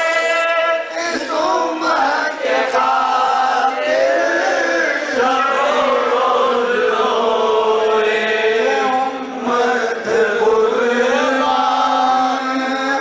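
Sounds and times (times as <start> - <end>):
voices chanting melodic recitation: 0.0 - 13.0.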